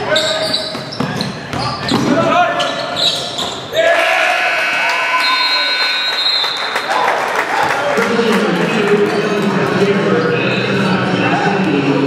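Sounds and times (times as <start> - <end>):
players' voices: 6.8 - 12.0.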